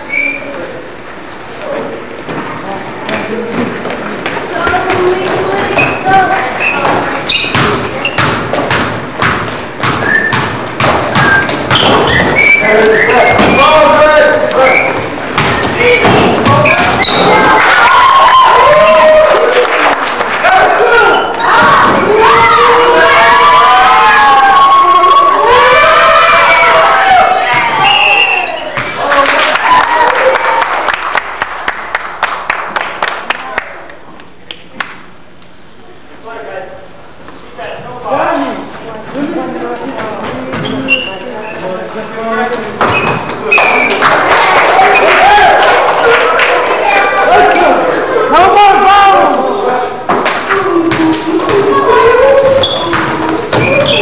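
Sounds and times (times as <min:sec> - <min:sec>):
basketball bouncing on court floor: 0:03.6 - 0:13.7, 0:14.8 - 0:17.4, 0:28.7 - 0:29.0, 0:52.4 - 0:54.0
people shouting and yelling: 0:10.0 - 0:30.7, 0:42.8 - 0:54.0.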